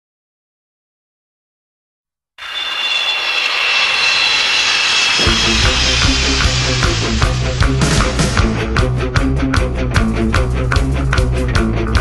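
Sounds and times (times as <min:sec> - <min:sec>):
hissing noise wash with high tones: 0:02.4 - 0:08.7
heavy drums and bass: 0:05.2 - 0:12.0.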